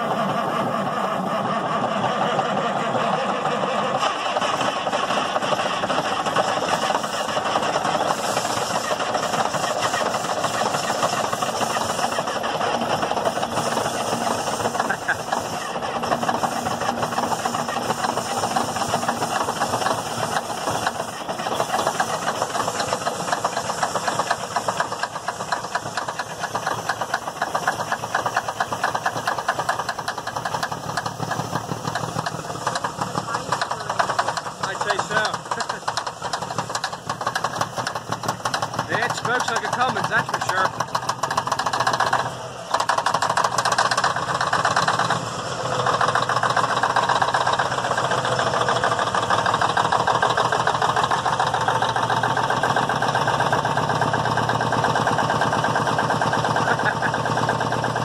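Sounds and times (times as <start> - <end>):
diesel truck engine running: 0.0 - 58.0.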